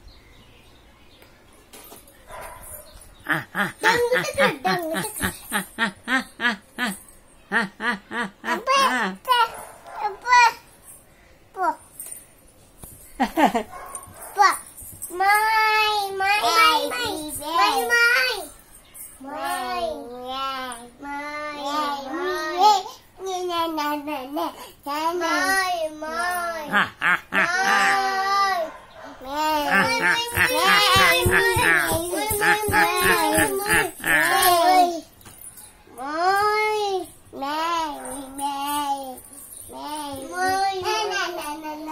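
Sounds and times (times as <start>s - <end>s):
young child singing: 15.1s - 18.5s, 19.2s - 26.7s, 27.4s - 35.1s, 36.0s - 41.9s.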